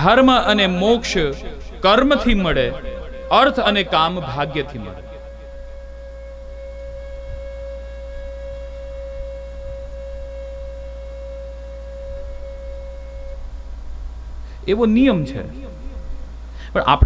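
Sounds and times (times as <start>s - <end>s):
low electrical hum: 0.0s - 17.0s
steady held tone: 0.0s - 17.0s.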